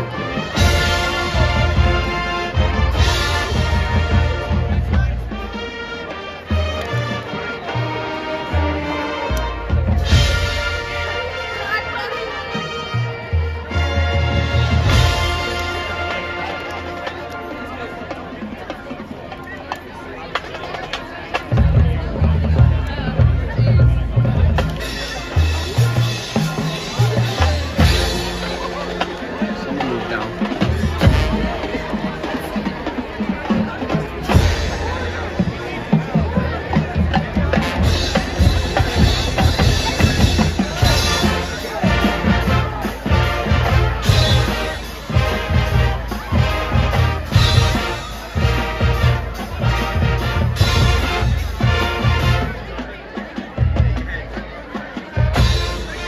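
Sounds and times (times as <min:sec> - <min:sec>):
drums: 0:00.0 - 0:56.0
marching band playing: 0:00.0 - 0:56.0.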